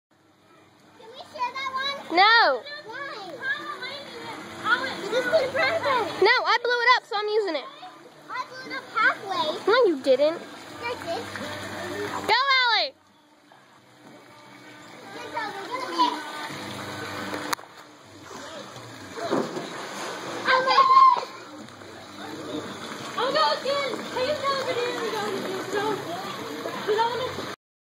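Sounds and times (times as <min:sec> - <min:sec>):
children calling and shouting: 0:00.3 - 0:13.0, 0:14.5 - 0:16.8, 0:20.4 - 0:27.6
water splash: 0:15.6 - 0:27.6.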